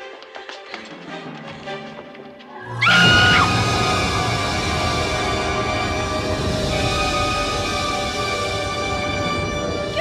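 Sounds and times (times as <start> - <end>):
horror soundtrack music: 2.5 - 10.0.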